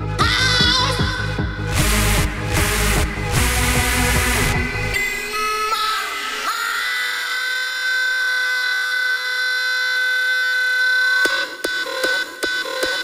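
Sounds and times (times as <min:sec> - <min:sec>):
synth lead sliding up: 0:00.8 - 0:07.0
sustained high synth tones: 0:01.9 - 0:07.8.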